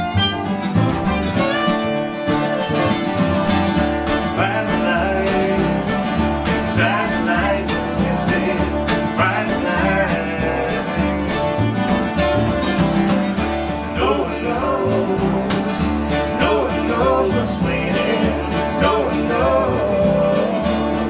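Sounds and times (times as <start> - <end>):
fiddle melody: 0.0 - 21.0
strummed acoustic guitars: 0.0 - 21.0
upright bass plucking: 0.0 - 21.0.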